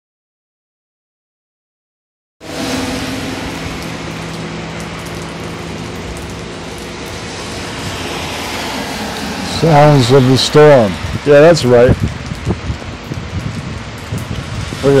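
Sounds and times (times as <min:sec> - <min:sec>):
heavy rain on wet road: 0:02.4 - 0:15.0.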